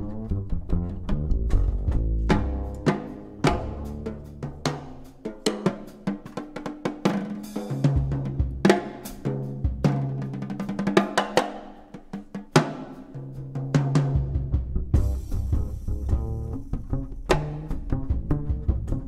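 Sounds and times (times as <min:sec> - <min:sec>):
double bass notes: 0:00.0 - 0:05.0, 0:13.2 - 0:19.0
jazz drum kit playing: 0:00.0 - 0:19.0.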